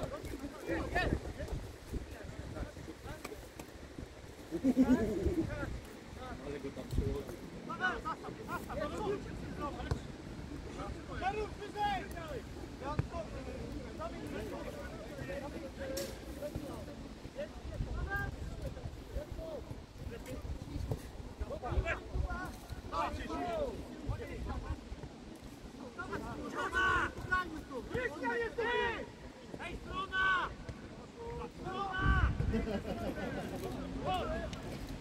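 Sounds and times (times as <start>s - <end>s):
wind rumble on microphone: 0.0s - 3.2s, 32.0s - 32.9s
players shouting: 26.0s - 30.6s.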